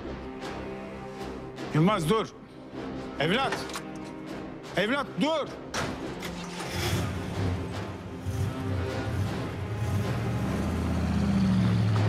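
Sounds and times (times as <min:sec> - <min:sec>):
dramatic background music: 0:00.0 - 0:12.0
car engine running and revving: 0:06.4 - 0:12.0.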